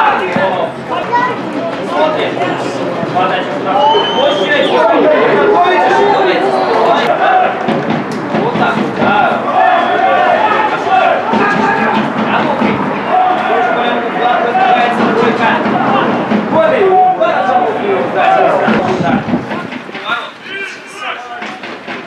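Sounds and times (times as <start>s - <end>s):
voices shouting and calling: 0.0s - 22.0s.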